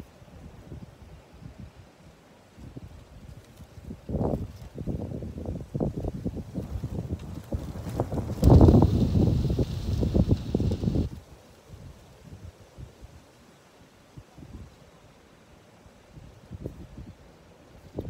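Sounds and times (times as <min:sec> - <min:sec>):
wind buffeting microphone: 0:02.6 - 0:11.3.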